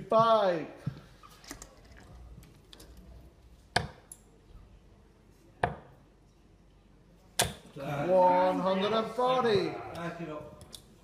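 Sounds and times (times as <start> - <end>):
darts striking a dartboard: 3.7 - 4.0, 5.6 - 5.9, 7.4 - 7.7.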